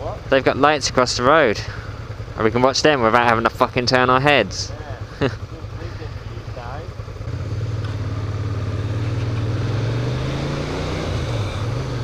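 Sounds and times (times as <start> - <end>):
motorcycle engine revving: 0.0 - 12.0
wind and road noise: 0.0 - 12.0.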